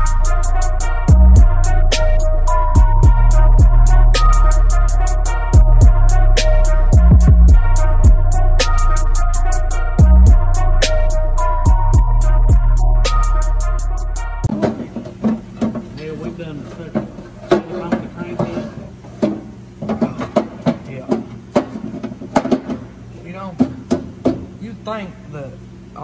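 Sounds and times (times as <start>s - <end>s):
music: 0.0s - 15.0s
metal knocks and clunks: 14.4s - 22.9s, 23.5s - 24.6s.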